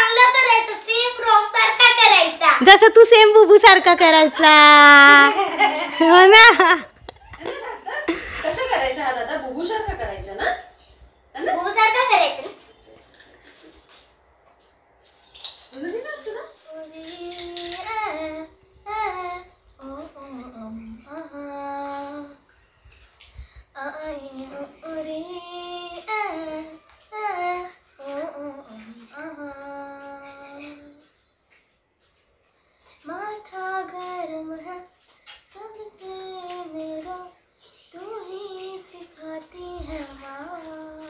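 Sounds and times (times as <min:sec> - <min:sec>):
girl singing unaccompanied: 0:00.0 - 0:07.0, 0:16.6 - 0:31.2, 0:33.0 - 0:41.0.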